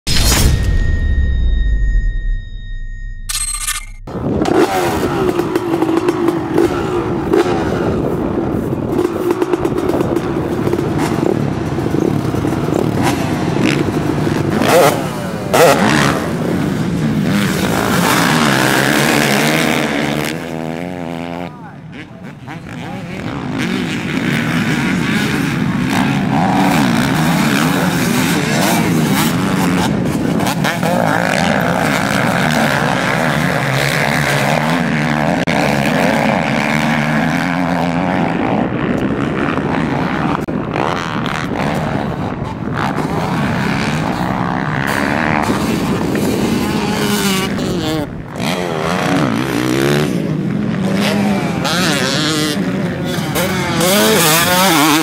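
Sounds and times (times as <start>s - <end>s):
motocross bikes revving past: 4.1s - 55.0s.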